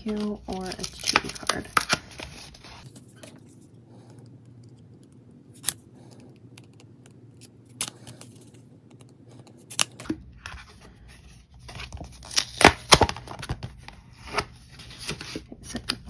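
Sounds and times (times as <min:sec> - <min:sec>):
paper rustling: 0:00.0 - 0:03.6, 0:09.4 - 0:16.0.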